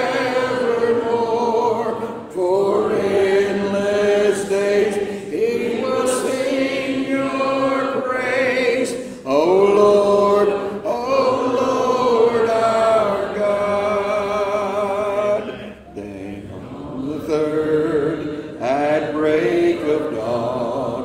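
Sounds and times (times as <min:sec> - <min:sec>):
congregation singing a hymn: 0:00.0 - 0:21.0.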